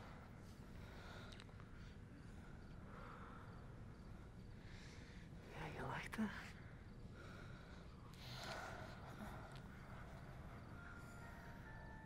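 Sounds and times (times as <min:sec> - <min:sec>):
soft whisper: 0:05.4 - 0:06.6.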